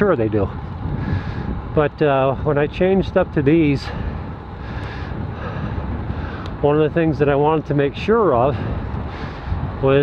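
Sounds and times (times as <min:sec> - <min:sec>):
rolling road noise: 0:00.0 - 0:10.0
wind rushing over microphone: 0:00.0 - 0:10.0.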